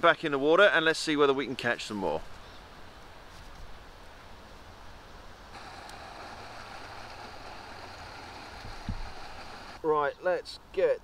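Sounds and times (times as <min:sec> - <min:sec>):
outdoor hiss with low rumble: 0:00.0 - 0:11.0.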